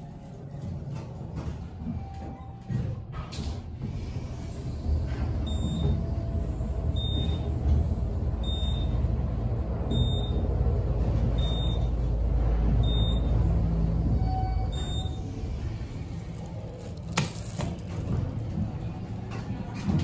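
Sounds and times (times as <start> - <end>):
elevator car rumbling: 0.0 - 20.0.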